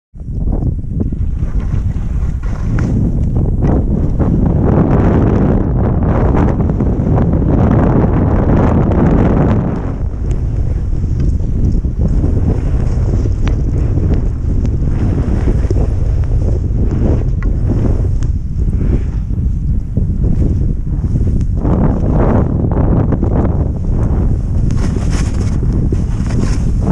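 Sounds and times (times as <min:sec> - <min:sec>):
wind buffeting microphone: 0:00.1 - 0:26.9
skis running through snow: 0:01.4 - 0:04.3, 0:09.8 - 0:19.6, 0:23.8 - 0:26.9.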